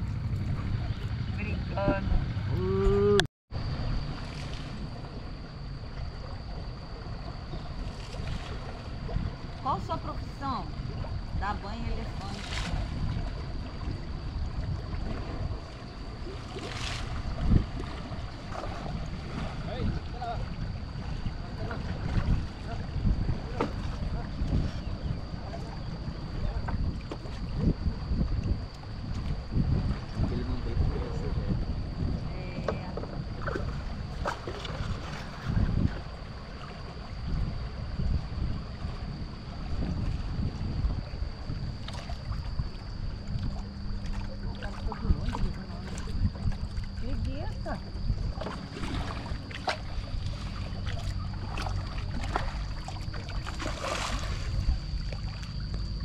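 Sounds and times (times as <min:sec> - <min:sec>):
water lapping and splashing: 0:00.0 - 0:56.0
wind rumbling on microphone: 0:00.0 - 0:56.0.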